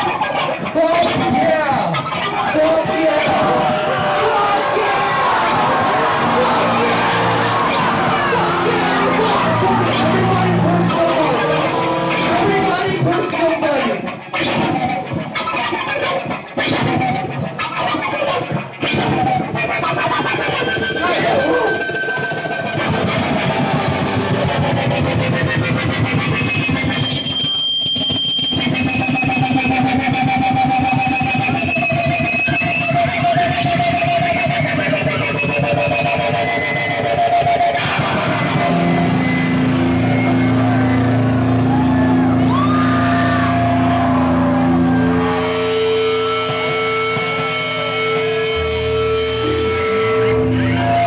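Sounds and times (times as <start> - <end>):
live band distorted guitar and bass: 0.0 - 51.0
high wavering guitar whines: 1.9 - 51.0
low droning notes: 5.2 - 13.7, 38.0 - 51.0.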